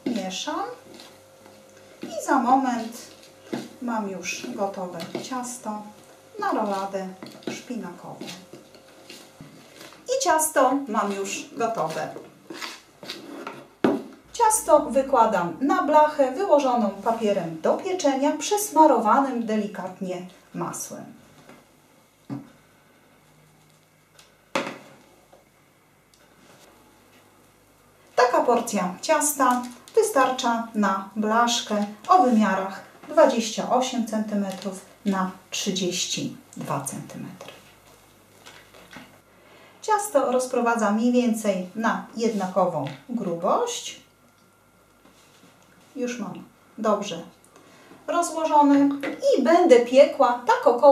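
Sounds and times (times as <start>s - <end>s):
woman speaking: 0.0s - 0.8s, 2.0s - 8.5s, 10.0s - 12.3s, 14.3s - 21.2s, 28.2s - 37.5s, 39.8s - 44.1s, 45.9s - 47.4s, 48.1s - 50.9s
spoon scraping batter in bowl: 0.0s - 10.1s, 10.8s - 13.7s.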